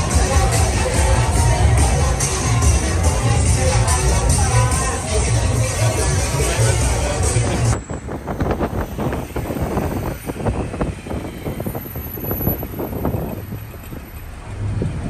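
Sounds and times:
loud music with heavy bass beat: 0:00.0 - 0:07.8
road traffic noise: 0:00.0 - 0:15.0.

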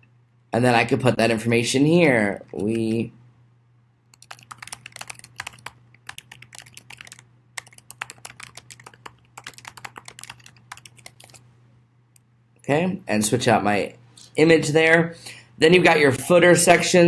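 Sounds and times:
faint low hum: 0:00.0 - 0:17.0
computer keyboard typing: 0:04.1 - 0:11.4.

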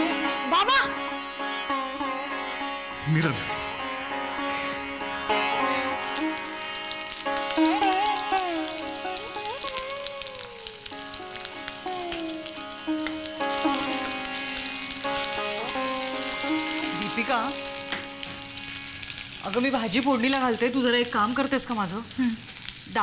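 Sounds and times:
background music melody: 0:00.0 - 0:21.7
food frying and crackling: 0:04.5 - 0:23.0.

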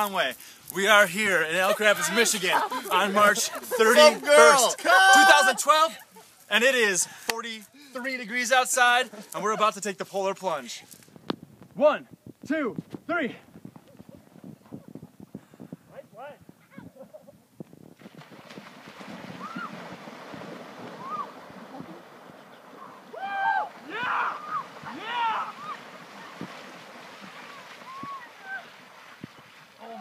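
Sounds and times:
wind: 0:00.0 - 0:30.0
people shouting and whooping: 0:02.2 - 0:06.0, 0:22.9 - 0:25.8, 0:27.8 - 0:28.7
splashing water: 0:18.0 - 0:30.0.

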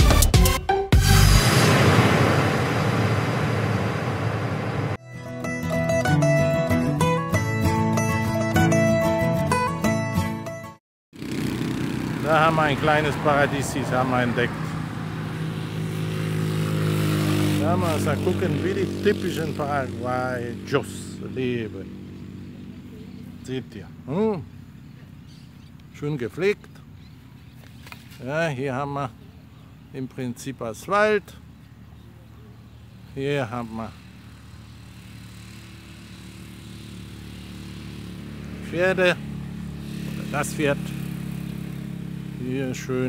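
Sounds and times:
vehicle engine humming: 0:01.2 - 0:09.3, 0:11.2 - 0:43.0.

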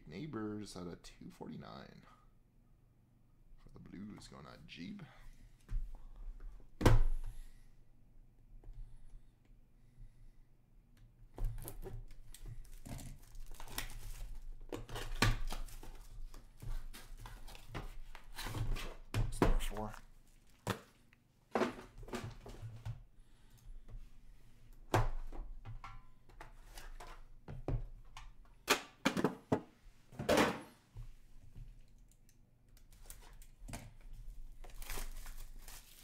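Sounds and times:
shrink wrap crinkling and tearing: 0:12.2 - 0:16.4, 0:34.3 - 0:36.0.

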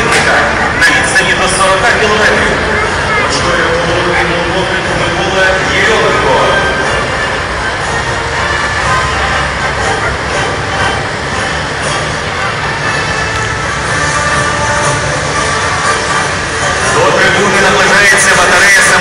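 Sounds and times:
large crowd voices: 0:00.0 - 0:19.0
tracked vehicles rumbling past: 0:00.0 - 0:19.0.

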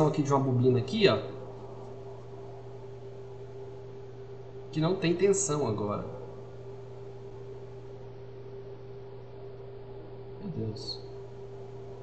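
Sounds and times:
constant high-pitched tone: 0:00.0 - 0:12.0
steady low hum: 0:00.0 - 0:12.0.

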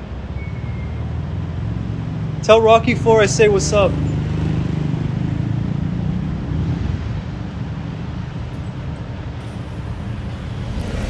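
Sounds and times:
vehicle engines rumbling: 0:01.1 - 0:11.0.

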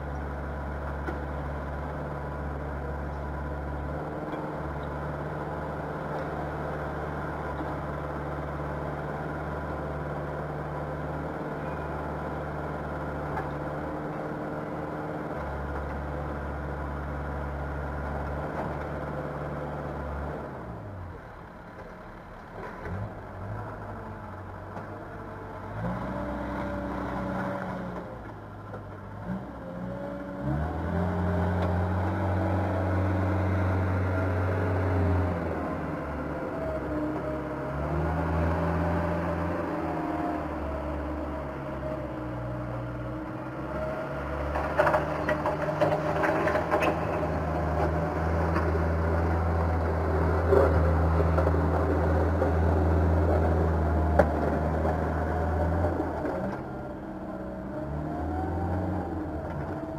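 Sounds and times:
backhoe engine revving: 0:22.7 - 0:28.1, 0:29.0 - 0:59.9.

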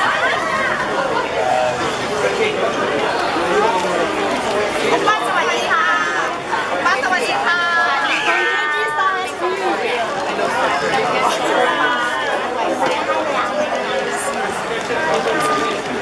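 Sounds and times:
crowd talking and calling out: 0:00.0 - 0:16.0.

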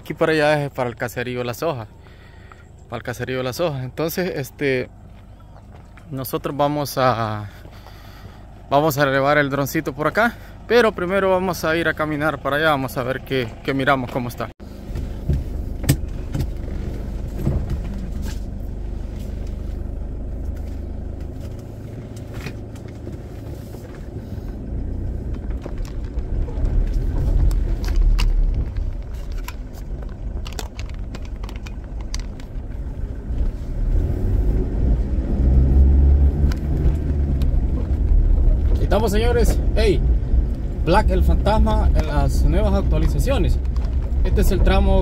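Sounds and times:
car engine and tyre rumble: 0:00.0 - 0:45.0
sharp clicks and rattles: 0:14.9 - 0:33.6, 0:36.4 - 0:45.0.

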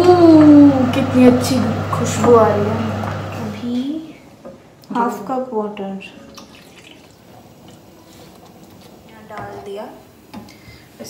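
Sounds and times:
person speaking: 0:00.0 - 0:04.2
gravy dripping into a pan: 0:06.2 - 0:08.0.

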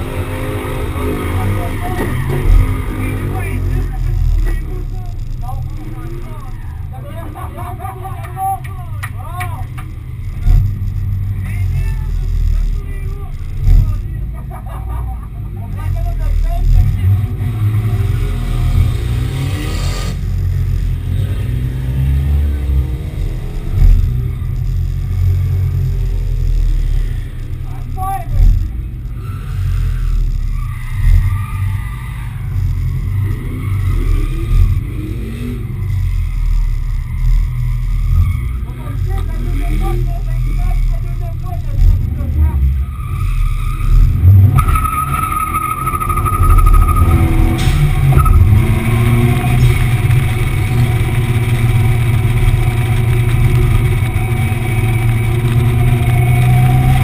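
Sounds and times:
car engine rumbling: 0:00.0 - 0:57.0.

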